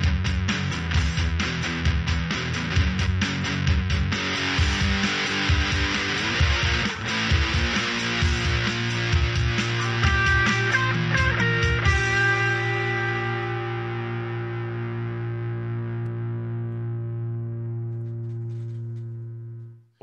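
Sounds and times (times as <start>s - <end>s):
electric guitar notes: 0.9s - 19.8s
ringing guitar chord: 4.3s - 19.6s.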